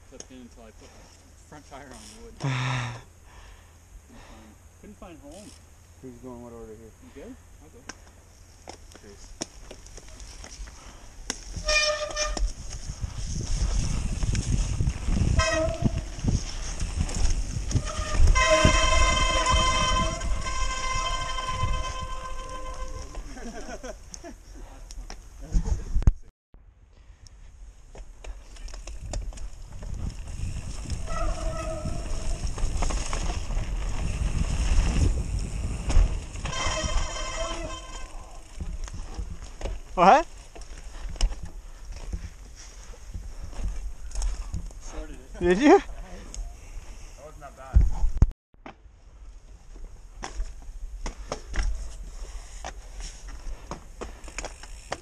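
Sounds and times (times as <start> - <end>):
bike tyres rolling and skidding: 8.0 - 25.9, 27.5 - 47.2, 49.2 - 55.0
bike chain and frame rattling: 8.4 - 24.3, 28.2 - 47.1, 51.5 - 55.0
freewheel hub buzz: 11.4 - 23.5, 28.8 - 40.1, 53.4 - 55.0.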